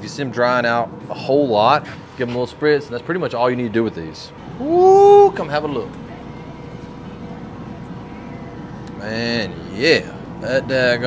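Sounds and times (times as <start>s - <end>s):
smoker fan hum: 0.0s - 11.0s.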